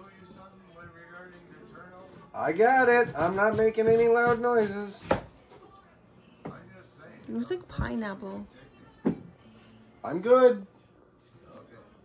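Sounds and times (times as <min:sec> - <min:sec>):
cleaver chopping onto cutting board: 0:02.8 - 0:05.3.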